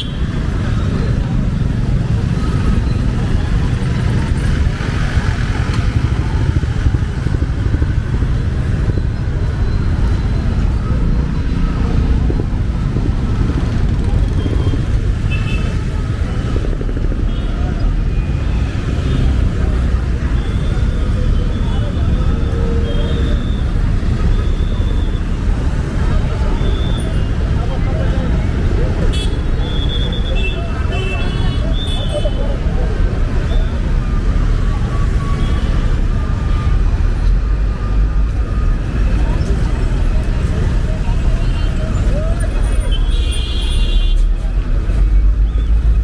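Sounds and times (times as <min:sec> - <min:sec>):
passers-by talking: 0:00.0 - 0:46.0
traffic rumble: 0:00.0 - 0:46.0
vehicle horns: 0:41.6 - 0:44.4.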